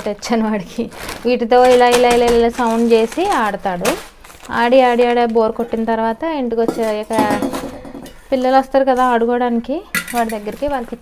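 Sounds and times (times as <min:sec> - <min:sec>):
woman talking: 0:00.0 - 0:07.7, 0:08.3 - 0:11.0
steel kitchenware clink: 0:06.7 - 0:08.2, 0:09.9 - 0:10.5.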